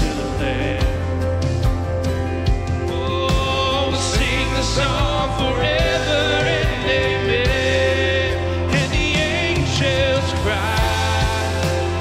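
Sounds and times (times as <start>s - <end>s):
acoustic guitar: 0.0s - 12.0s
drums: 0.0s - 12.0s
keyboard: 0.0s - 12.0s
singers holding long notes: 2.9s - 12.0s.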